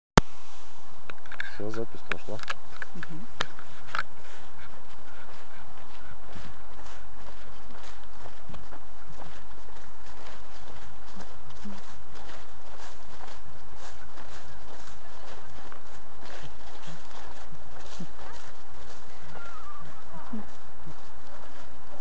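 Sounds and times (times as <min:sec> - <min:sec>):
rustling: 0:00.2 - 0:22.0
faint distant voices: 0:01.3 - 0:22.0.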